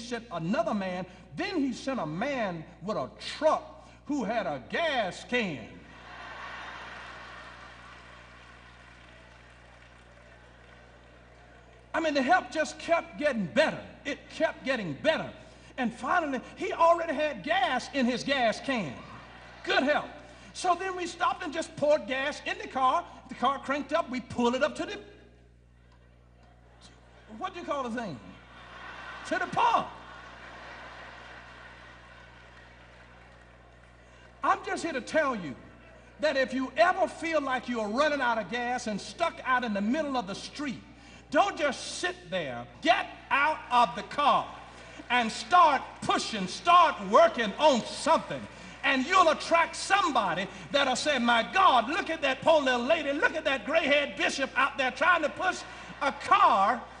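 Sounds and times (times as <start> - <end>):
low steady hum: 0.0 - 57.0
faint sound system hiss: 5.1 - 12.0, 25.0 - 56.1
crowd laughing: 5.8 - 8.1, 19.0 - 20.1, 28.4 - 33.4, 55.1 - 57.0.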